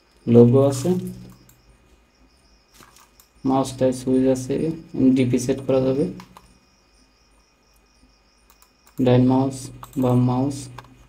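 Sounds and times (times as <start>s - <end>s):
faint high-pitched whine: 0.0s - 11.0s
faint ticks: 2.7s - 3.4s, 7.4s - 11.0s.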